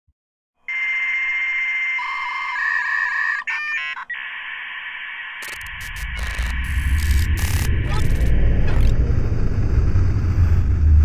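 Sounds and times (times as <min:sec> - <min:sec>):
telephone-like hiss: 0:04.7 - 0:08.9
quick flurry of beeps: 0:05.3 - 0:08.3.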